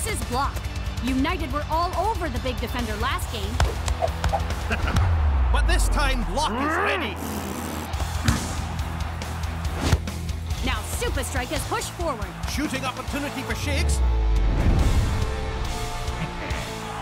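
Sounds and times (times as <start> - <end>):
driving background music: 0.0 - 17.0.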